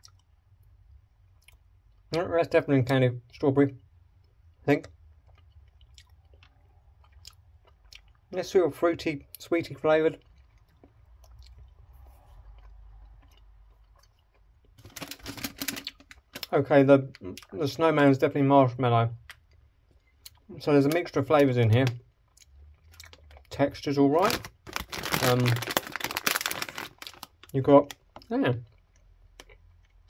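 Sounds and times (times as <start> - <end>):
soft chewing: 0.0 - 2.2, 3.3 - 8.4, 10.1 - 16.5, 19.2 - 20.6, 22.0 - 23.6, 25.7 - 30.0
plastic bag crinkling: 14.8 - 16.6, 23.0 - 28.1.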